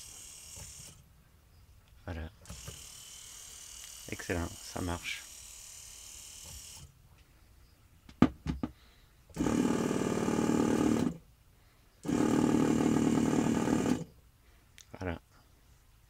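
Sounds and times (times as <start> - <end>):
tattoo machine buzzing: 2.5 - 6.9.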